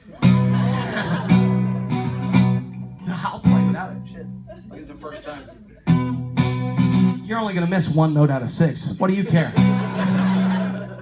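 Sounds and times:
guitar chords strummed: 0:00.1 - 0:04.4, 0:05.8 - 0:08.0, 0:09.4 - 0:11.0.

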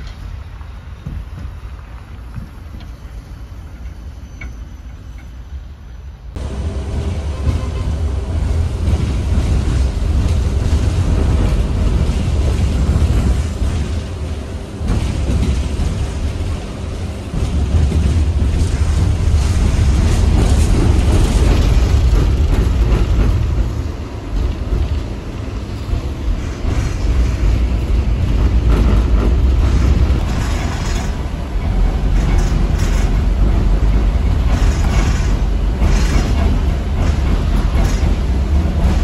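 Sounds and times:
tram wheels rumbling on rail: 0:00.0 - 0:39.0.

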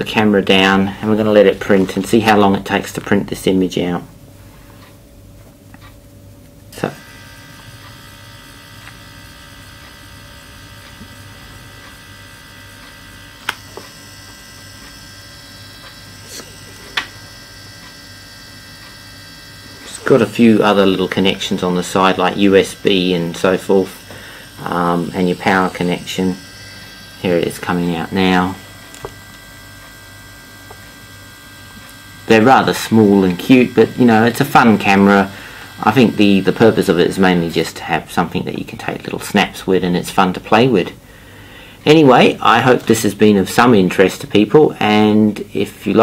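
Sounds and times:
printer hum and whine: 0:05.8 - 0:41.1.

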